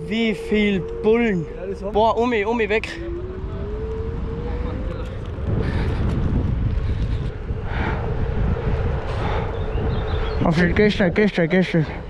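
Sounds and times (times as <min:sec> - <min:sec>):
electric motor whine: 0:00.0 - 0:06.7
road rumble: 0:00.0 - 0:12.0
wind rush on microphone: 0:00.0 - 0:12.0.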